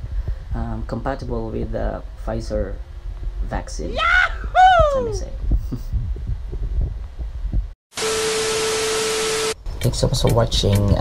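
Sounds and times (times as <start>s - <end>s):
steady low hum tone: 0.0s - 7.8s
static hiss burst: 7.9s - 9.6s.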